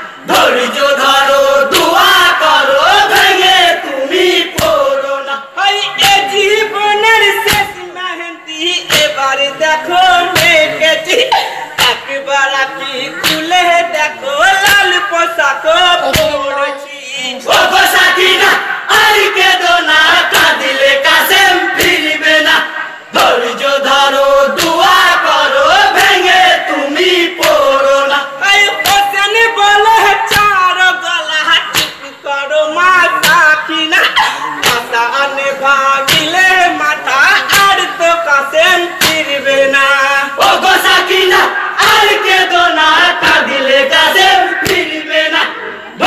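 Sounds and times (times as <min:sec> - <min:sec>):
group chanting a lament: 0:00.0 - 0:46.0.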